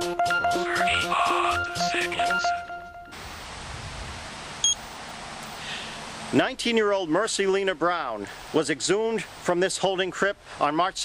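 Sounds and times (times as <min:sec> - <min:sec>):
stopwatch beep: 0:00.4 - 0:03.2, 0:04.6 - 0:04.8.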